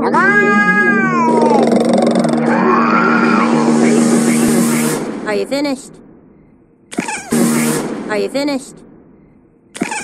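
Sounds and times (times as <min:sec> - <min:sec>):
steady low drone: 0:01.1 - 0:06.8.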